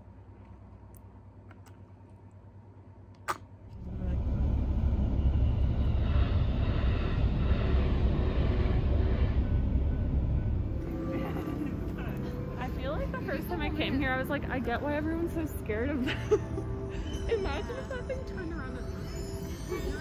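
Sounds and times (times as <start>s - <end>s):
train rumbling past: 3.7s - 20.0s.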